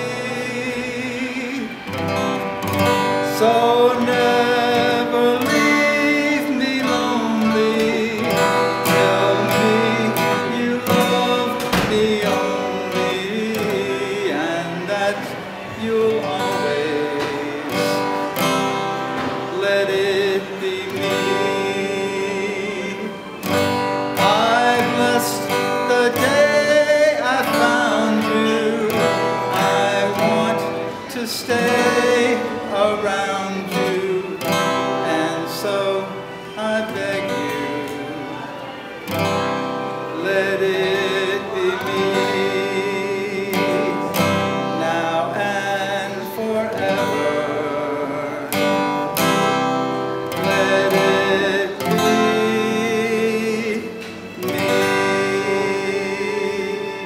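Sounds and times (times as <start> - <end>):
man singing: 0.0 - 57.0
strummed acoustic guitar: 0.0 - 57.0.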